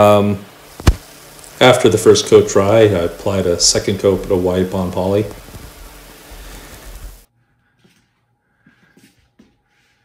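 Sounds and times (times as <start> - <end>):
steady background hiss: 0.0 - 7.3.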